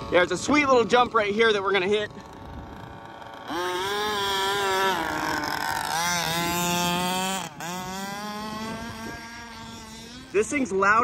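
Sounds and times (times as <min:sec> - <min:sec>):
two-stroke engine revving: 0:00.0 - 0:11.0.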